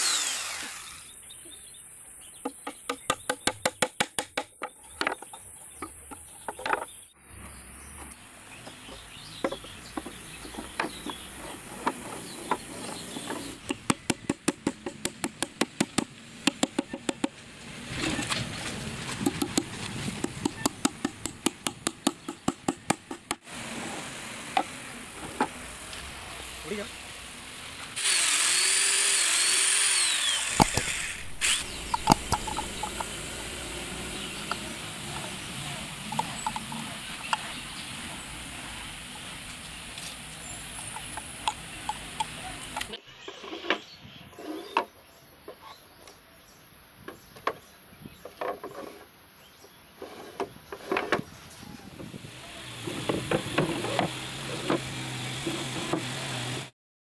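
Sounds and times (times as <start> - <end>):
screwdriver turning screw into wood: 0.0 - 1.2, 28.0 - 33.2.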